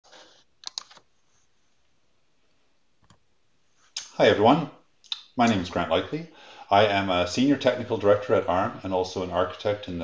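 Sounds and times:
quick sharp clicks: 0.6 - 1.0.

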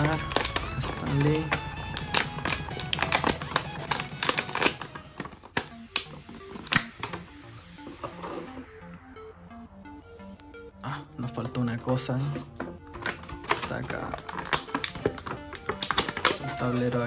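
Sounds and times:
plastic tray crackling: 0.0 - 7.3, 12.5 - 17.0
background music: 0.0 - 17.0.

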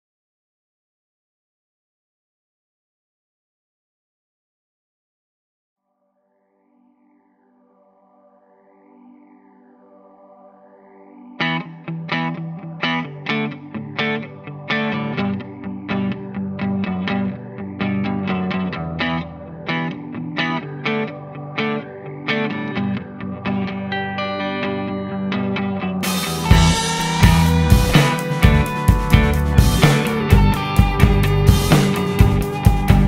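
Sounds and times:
electric guitar riff: 11.4 - 33.0.

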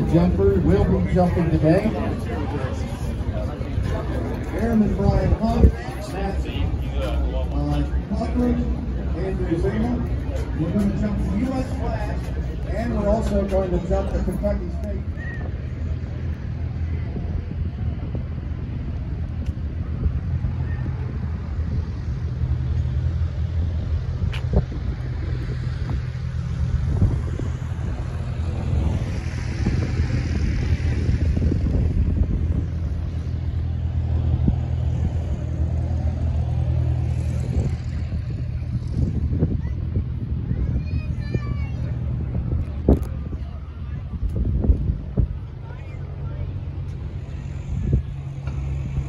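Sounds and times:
engine running: 0.0 - 49.0.

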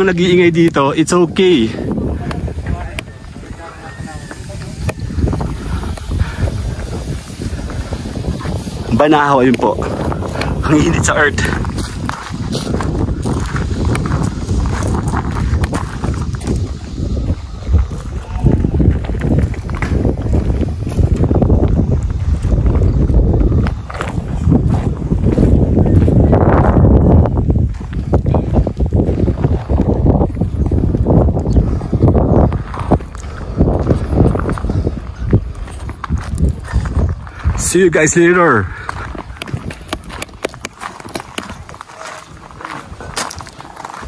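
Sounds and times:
wind buffeting microphone: 0.0 - 44.0
footsteps on gravel: 1.9 - 44.0.

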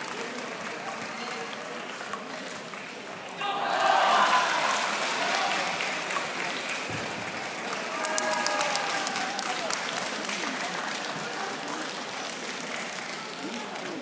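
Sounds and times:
crowd voices: 0.0 - 14.0
spectators applauding: 0.0 - 14.0.

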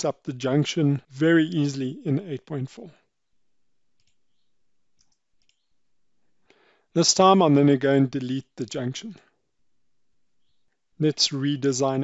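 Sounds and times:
faint clicks: 3.9 - 5.7
short breath: 6.3 - 6.9.

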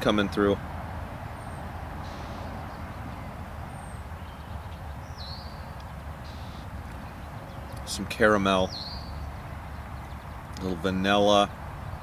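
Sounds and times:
faint bird chirps: 1.4 - 3.0, 3.7 - 8.0, 8.6 - 10.5.

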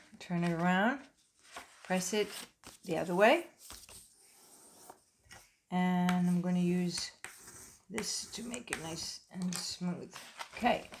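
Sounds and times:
heavy paper rubbing on table: 7.2 - 8.5.

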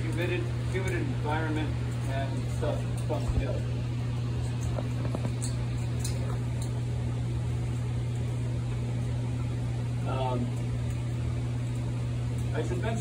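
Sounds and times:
low machine hum: 0.0 - 13.0.

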